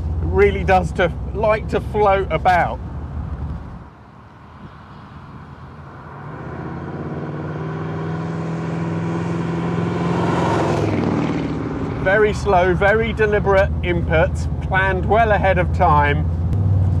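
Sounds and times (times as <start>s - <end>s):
car engine approaching: 0.0s - 17.0s.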